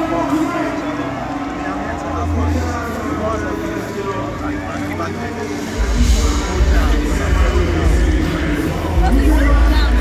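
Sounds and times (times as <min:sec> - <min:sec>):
deep bass concert music: 0:00.0 - 0:10.0.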